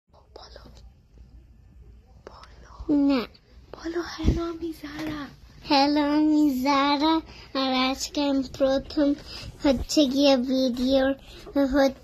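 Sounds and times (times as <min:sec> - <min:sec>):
faint whispering: 0:00.1 - 0:05.3.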